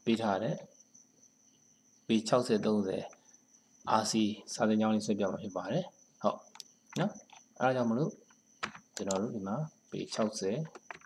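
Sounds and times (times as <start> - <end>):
man speaking: 2.1 - 3.2.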